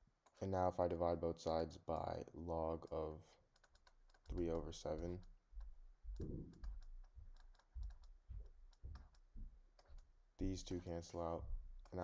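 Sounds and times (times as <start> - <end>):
stylus tapping on drawing tablet: 3.6 - 10.5.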